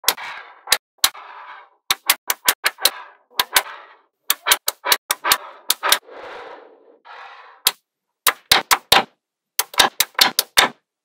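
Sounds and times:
magnetic balls snapping with clicks: 0:07.7 - 0:10.8.

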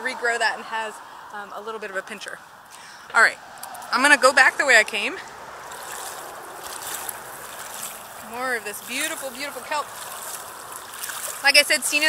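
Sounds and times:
shallow seawater washing: 0:04.8 - 0:12.0
splashing while wading: 0:05.2 - 0:12.0.

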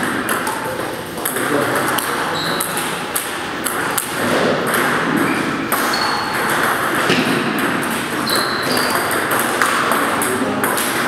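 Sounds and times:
large hall background noise: 0:00.0 - 0:11.0
table tennis ball clicks: 0:00.0 - 0:11.0.

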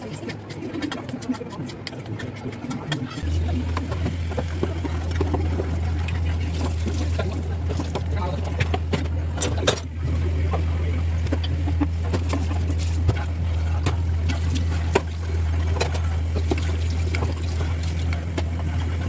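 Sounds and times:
syrup boiling: 0:00.0 - 0:08.3, 0:11.6 - 0:19.0
steady low hum: 0:00.0 - 0:19.0.

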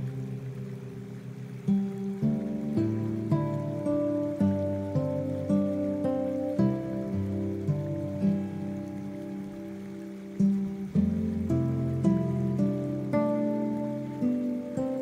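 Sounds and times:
acoustic guitar picking: 0:00.0 - 0:15.0
rain: 0:00.0 - 0:15.0.

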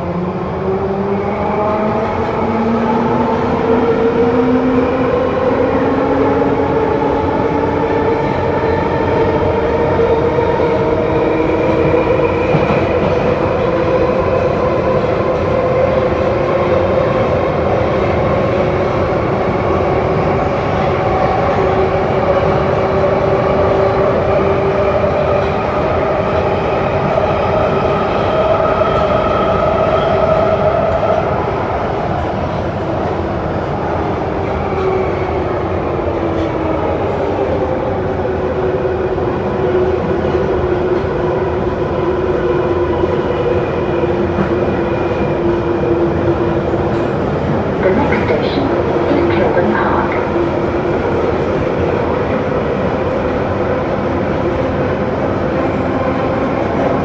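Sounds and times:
train wheels rumbling on rail: 0:00.0 - 0:57.0.

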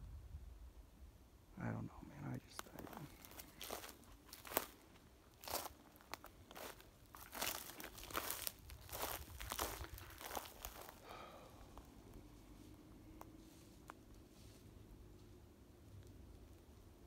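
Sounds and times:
footsteps crunching on pine needles: 0:02.6 - 0:11.9.

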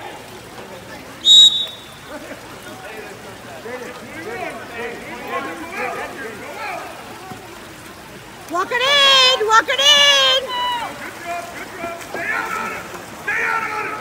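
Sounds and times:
swimmers splashing water: 0:00.0 - 0:14.0
referee's whistle blast: 0:01.2 - 0:02.0
spectators calling out: 0:01.2 - 0:02.7, 0:03.4 - 0:14.0
loud shouting: 0:08.7 - 0:14.0.

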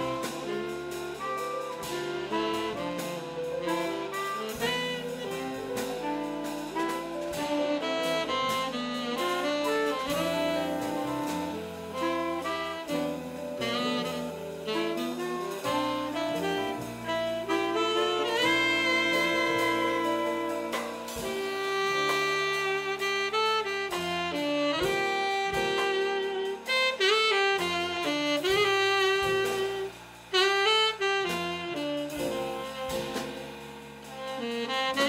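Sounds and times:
jazz big band playing: 0:00.0 - 0:35.0
saxophone section: 0:00.0 - 0:35.0.

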